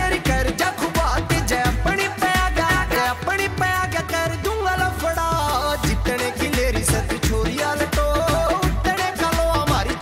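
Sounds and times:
bass and drum beat: 0.0 - 10.0
pop song melody: 0.0 - 10.0.

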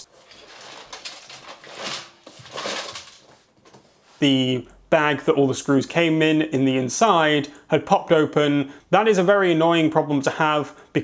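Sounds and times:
loose screws rattling in box: 0.3 - 3.2.

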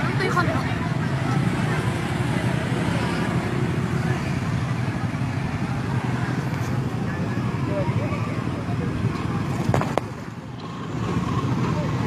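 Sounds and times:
onlookers' voices: 0.0 - 12.0
traffic: 0.0 - 12.0
vehicle engine rumbling: 0.0 - 12.0.

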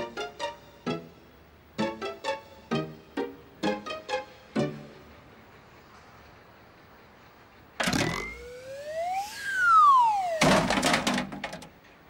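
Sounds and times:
cartoon sliding whistle: 7.8 - 10.7.

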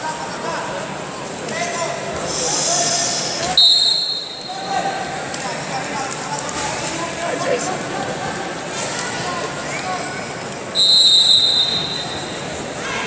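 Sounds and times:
chatter of people: 0.0 - 13.0
referee's whistle blast: 3.6 - 4.6, 10.8 - 12.4.

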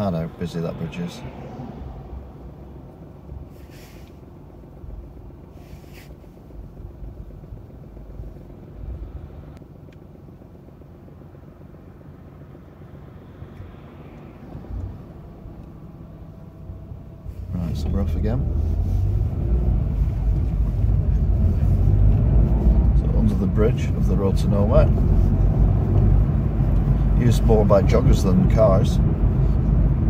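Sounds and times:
engine and tyre rumble: 0.0 - 30.0
brief hisses: 3.5 - 4.2.

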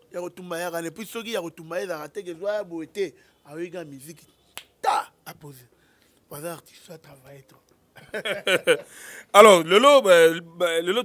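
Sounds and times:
breathy burst: 8.8 - 9.4.

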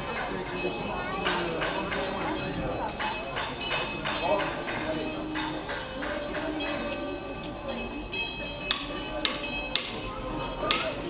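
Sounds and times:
hammer striking metal: 0.0 - 11.0.

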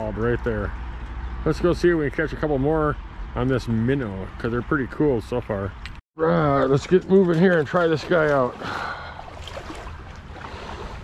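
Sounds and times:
water sloshing from wading: 6.6 - 11.0.

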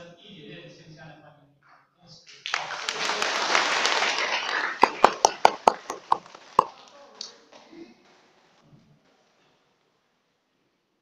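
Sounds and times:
audience applauding: 2.3 - 6.9.

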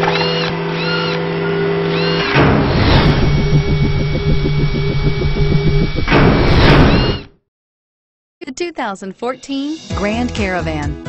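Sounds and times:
rapid mechanical pulsing: 2.0 - 7.4.

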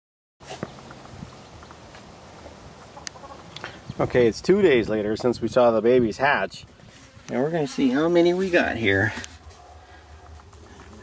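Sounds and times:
low hum: 7.7 - 11.0.

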